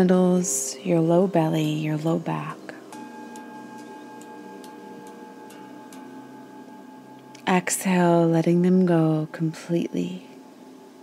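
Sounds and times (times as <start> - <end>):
held drone tones: 0.0 - 11.0.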